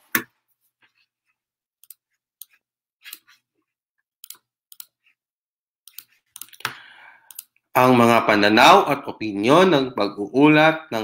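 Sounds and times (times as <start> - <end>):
computer mouse clicks: 1.8 - 3.2, 4.2 - 5.0, 5.8 - 7.6
recorded voice: 7.7 - 11.0.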